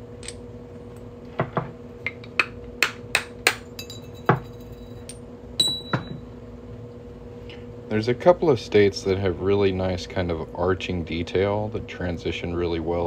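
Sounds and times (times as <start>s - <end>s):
hammer striking metal punch: 2.4s - 4.4s
high metallic ring: 3.8s - 6.3s.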